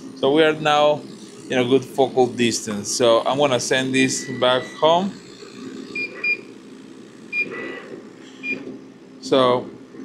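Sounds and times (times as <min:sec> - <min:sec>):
machine fan hum: 0:00.0 - 0:10.0
high electronic beeps: 0:03.9 - 0:05.2, 0:05.8 - 0:06.5.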